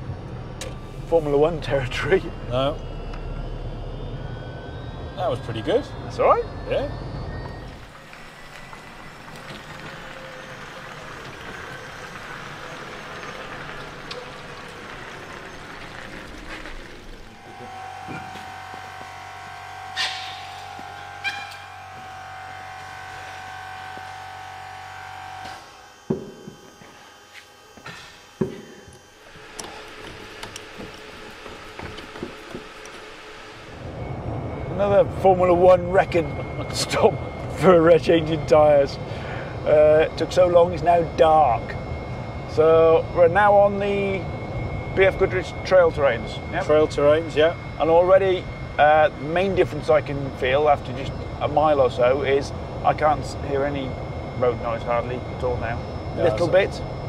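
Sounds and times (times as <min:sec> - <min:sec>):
steady mechanical hum: 0:00.0 - 0:57.0.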